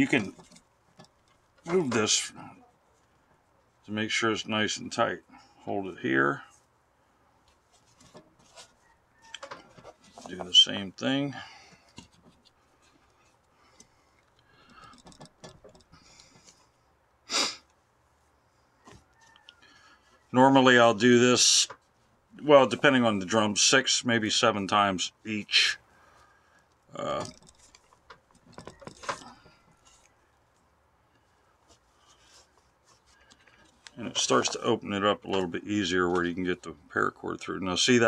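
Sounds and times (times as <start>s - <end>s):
paracord rustling and clicking: 11.8s - 16.8s, 26.6s - 34.6s.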